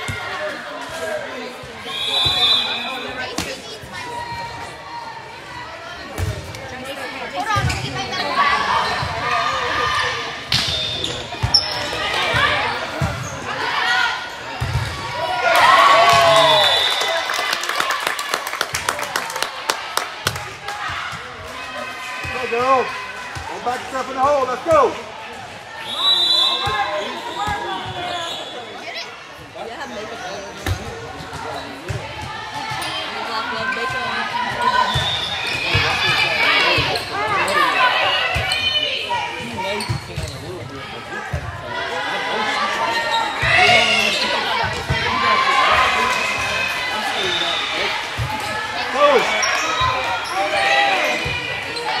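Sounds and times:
people shouting and cheering: 11.8s - 29.1s, 32.0s - 39.9s, 40.7s - 52.0s.

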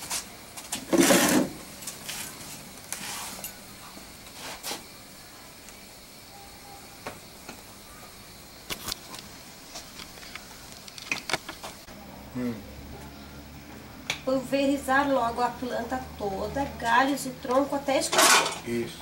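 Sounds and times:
low steady background noise: 0.0s - 19.0s.

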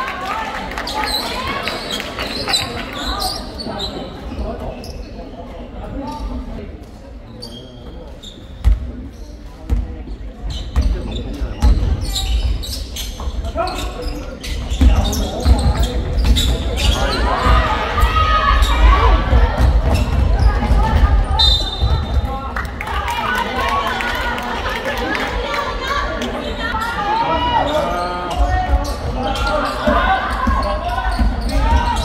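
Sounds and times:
players' voices: 0.0s - 32.0s
sneakers squeaking on floor: 0.9s - 6.5s, 7.3s - 22.2s, 27.6s - 32.0s.

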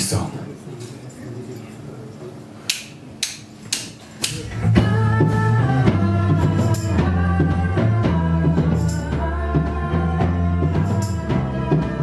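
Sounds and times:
sharp percussive clicks: 2.7s - 4.4s
live band playing: 4.1s - 12.0s.

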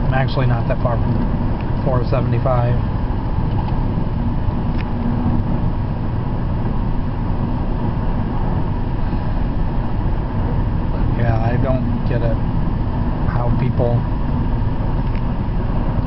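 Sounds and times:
car road and engine noise: 0.0s - 16.0s
low hum: 0.0s - 16.0s.

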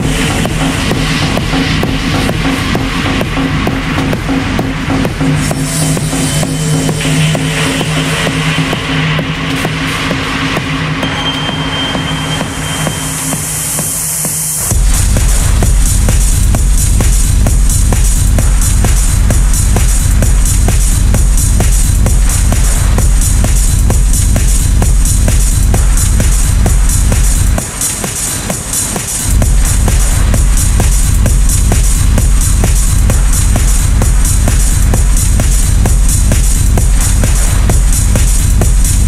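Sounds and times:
kick drum: 0.0s - 39.0s.

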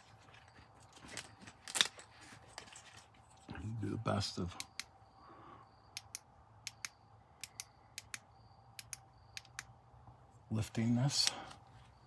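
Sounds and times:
sharp clicks in pairs: 5.9s - 9.7s.

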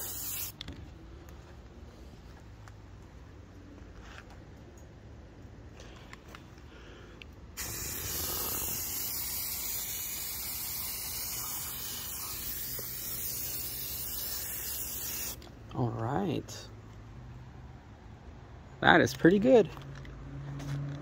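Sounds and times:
aerosol spray can hissing: 0.0s - 0.6s, 7.6s - 15.4s.

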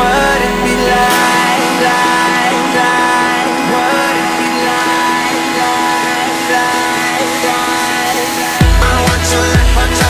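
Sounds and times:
instrumental pop music: 0.0s - 10.0s.

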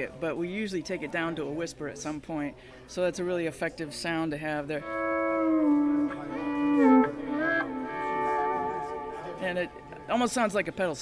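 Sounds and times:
electric guitar volume swells: 4.8s - 10.1s.

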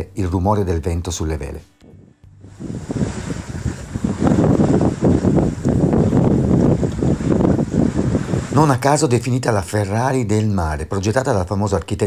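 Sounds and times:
wind buffeting microphone: 1.8s - 10.1s
wind on sails and rigging: 1.8s - 12.0s.

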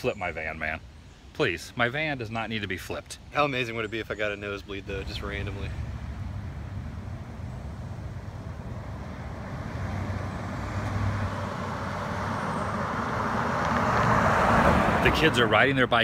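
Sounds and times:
van approaching: 4.0s - 16.0s.

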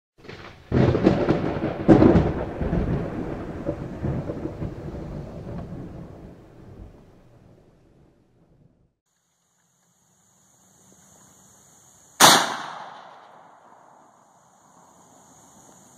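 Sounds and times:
loud thunder clap: 0.2s - 7.3s
thunder crack: 0.2s - 7.7s
long thunder rumble: 0.3s - 9.0s.

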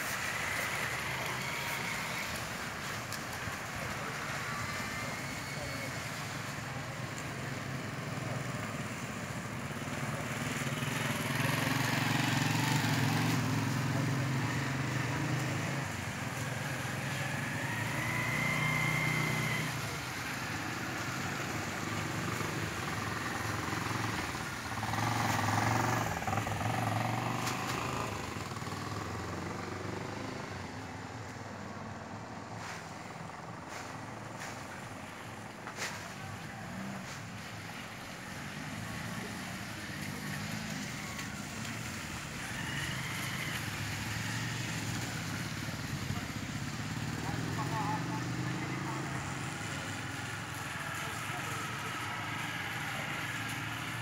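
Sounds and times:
car engines passing: 0.0s - 54.0s
motorcycle engines passing: 0.0s - 54.0s.

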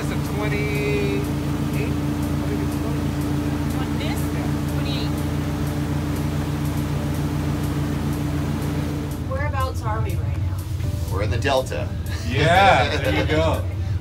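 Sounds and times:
boat engine humming: 0.0s - 14.0s.

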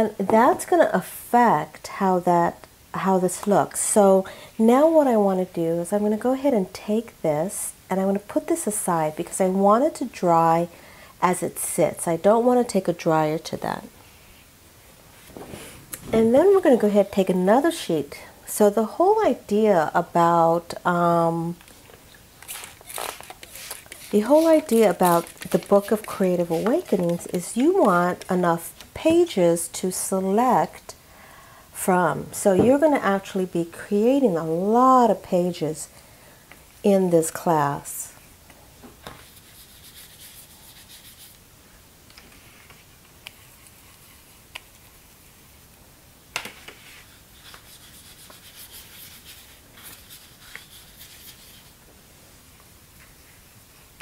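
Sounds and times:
paintbrush scrubbing on paper: 22.4s - 28.4s, 39.2s - 41.4s, 43.3s - 45.4s, 46.8s - 51.8s
paper rustling and scraping: 22.4s - 28.9s.

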